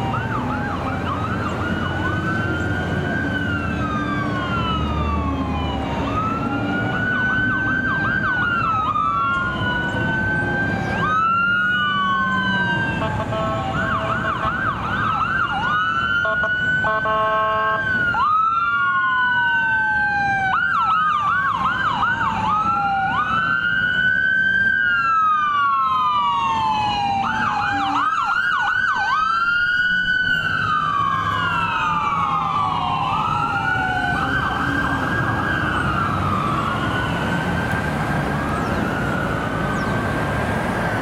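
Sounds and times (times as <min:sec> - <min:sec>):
ambulance siren wailing and yelping: 0:00.0 - 0:41.0
traffic rumble: 0:00.0 - 0:41.0.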